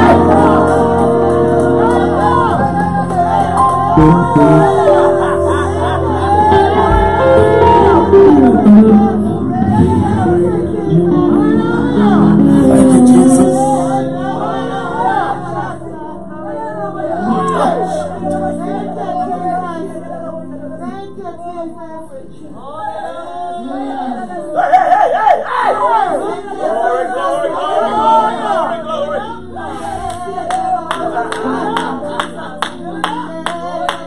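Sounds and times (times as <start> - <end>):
held instrument chords: 0.0 - 20.1
group singing gospel: 0.0 - 21.0, 25.5 - 34.0
rhythmic hand claps: 30.0 - 34.0.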